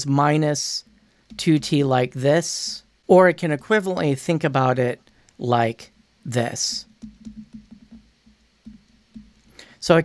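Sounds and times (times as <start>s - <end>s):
stylus tapping on tablet: 0.8s - 1.9s, 6.4s - 9.6s.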